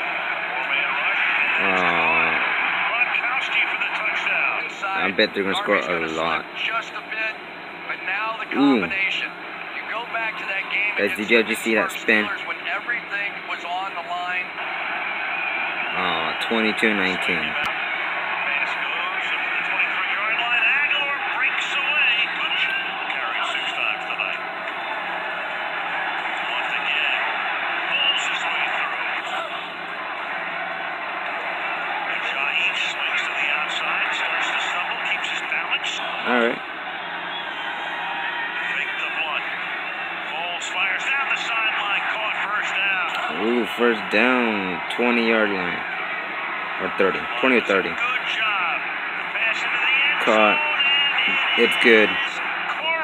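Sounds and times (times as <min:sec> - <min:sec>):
stadium crowd roar: 0:00.0 - 0:53.0
sports commentary: 0:00.4 - 0:14.6, 0:15.9 - 0:24.5, 0:26.1 - 0:29.7, 0:32.0 - 0:36.7, 0:38.5 - 0:46.0, 0:46.7 - 0:53.0.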